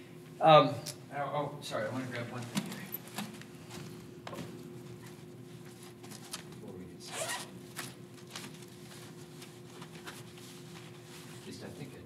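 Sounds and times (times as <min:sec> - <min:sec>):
low room hum: 0:00.0 - 0:12.0
rustles and scrapes: 0:07.8 - 0:11.8.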